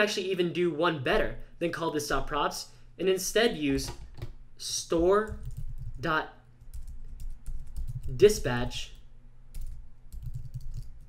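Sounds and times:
faint low hum: 0.0s - 11.0s
computer keyboard typing: 5.2s - 6.0s, 6.6s - 8.5s, 9.5s - 11.0s.

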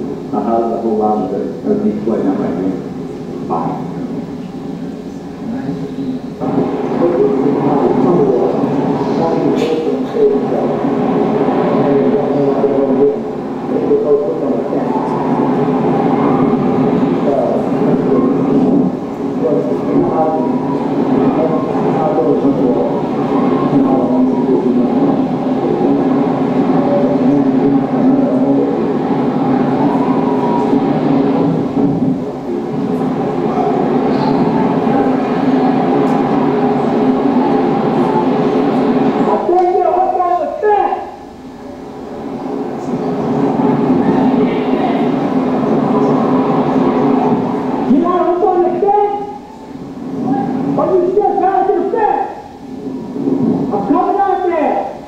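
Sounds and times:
voices: 0.0s - 55.0s.

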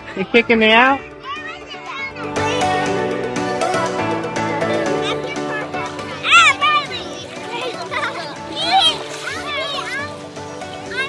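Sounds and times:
girls calling out and squealing: 4.7s - 11.0s.

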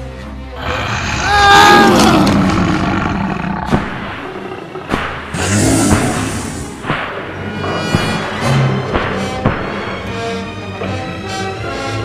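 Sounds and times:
creature growling roar: 0.6s - 6.8s.

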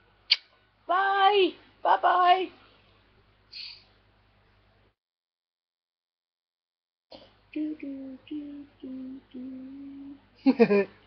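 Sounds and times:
woman humming a tune: 7.5s - 10.3s.

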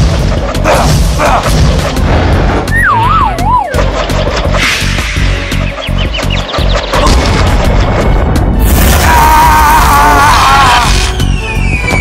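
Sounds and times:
cartoon action music: 0.0s - 12.0s.

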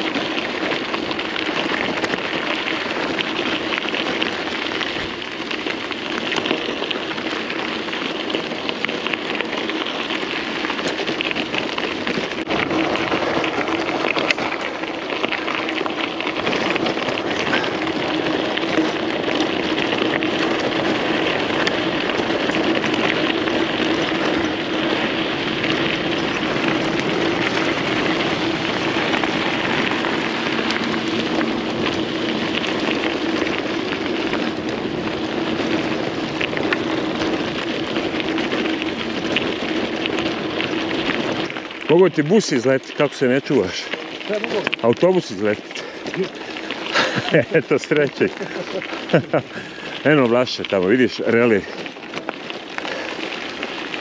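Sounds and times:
bike tyres crunching on gravel: 0.0s - 54.0s.

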